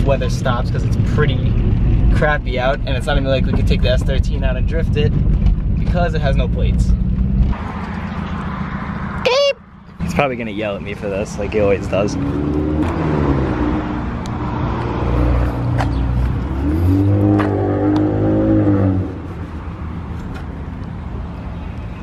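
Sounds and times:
car engine revving lightly: 0:11.0 - 0:19.5.

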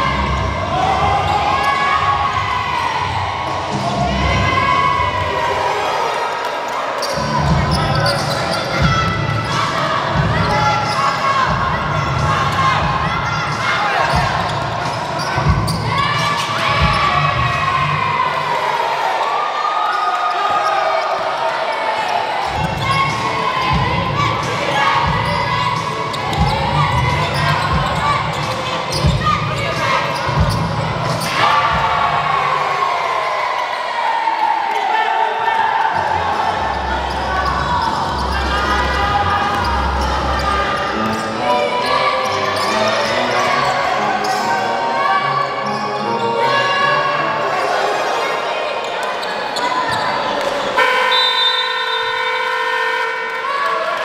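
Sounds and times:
voices echoing in gym: 0:00.0 - 0:54.0.

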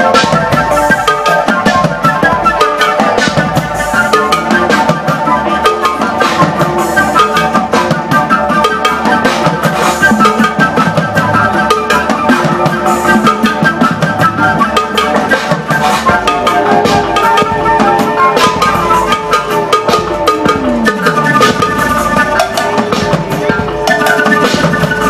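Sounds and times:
flute playing: 0:00.0 - 0:25.0
steady drum beat: 0:00.0 - 0:25.0.

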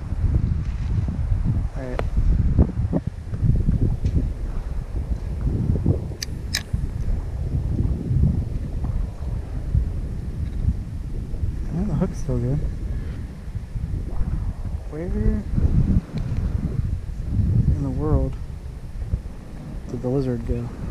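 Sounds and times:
wind buffeting microphone: 0:00.0 - 0:20.9
sharp clicks: 0:06.2 - 0:06.8.

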